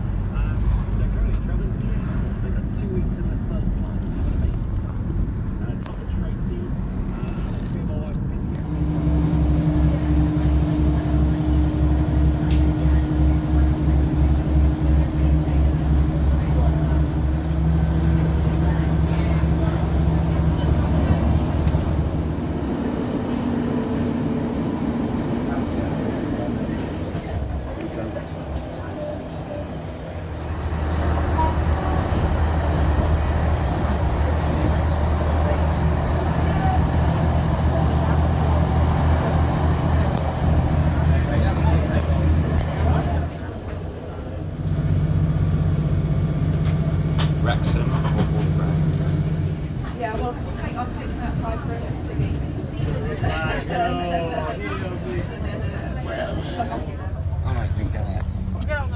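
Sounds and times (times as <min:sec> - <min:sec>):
train rumbling: 0:00.0 - 0:58.9.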